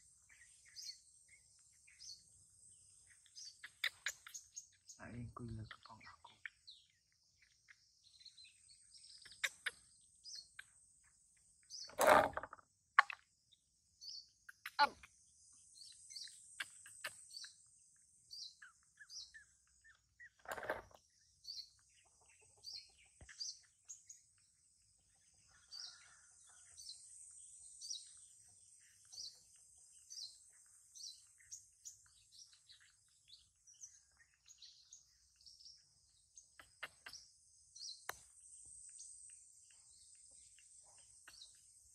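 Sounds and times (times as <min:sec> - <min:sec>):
small birds chirping: 0:00.0 - 0:41.9
insects buzzing: 0:22.7 - 0:41.9.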